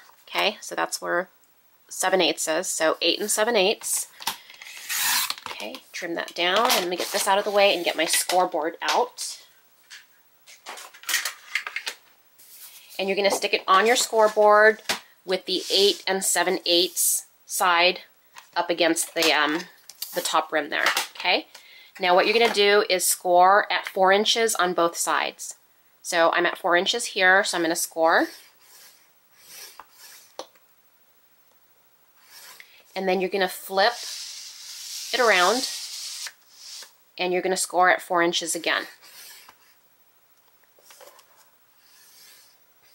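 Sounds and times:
cardstock rustling and sliding: 6.4s - 8.5s
scoring tool rasping on cardstock: 28.2s - 30.4s, 33.8s - 36.9s, 41.8s - 42.6s.

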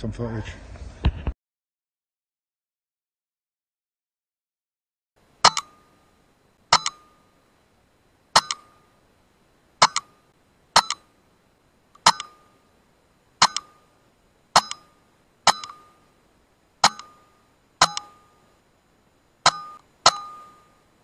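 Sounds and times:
metallic ring: 5.4s - 7.4s, 8.4s - 9.0s, 9.8s - 11.2s, 12.0s - 12.7s, 13.4s - 14.0s, 14.6s - 16.2s, 16.8s - 18.6s, 19.4s - 21.0s.

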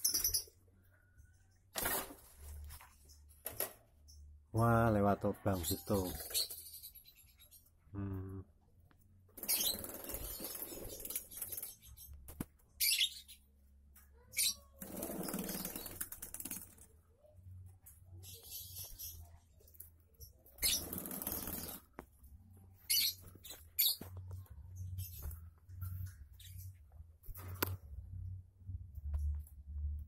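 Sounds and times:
birds fluttering wings: 1.7s - 3.8s, 9.3s - 12.5s, 14.8s - 17.0s, 20.6s - 22.0s.

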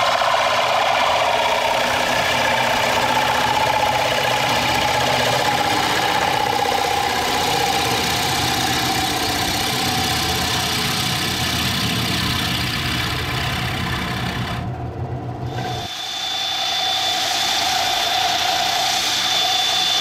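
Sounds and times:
gouge cutting spinning wood: 0.0s - 14.8s, 15.5s - 20.0s
lathe motor hum: 0.0s - 20.0s.

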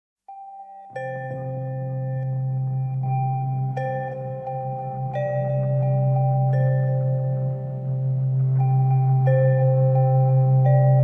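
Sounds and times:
ringing bell-like tones: 0.3s - 11.0s
low drone: 1.1s - 11.0s.

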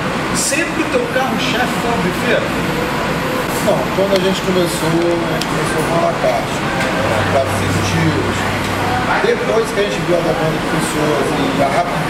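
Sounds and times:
steady background noise: 0.0s - 12.0s
men talking: 0.4s - 12.0s.

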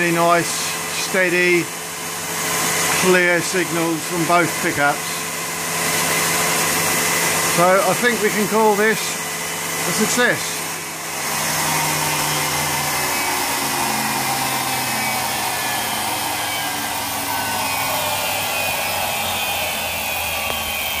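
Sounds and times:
electric motor whine and hum: 0.0s - 21.0s.

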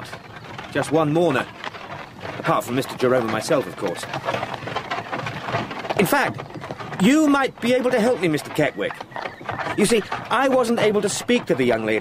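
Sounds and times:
cart wheels rattling on road: 0.0s - 12.0s
pony hooves on road: 0.0s - 12.0s.

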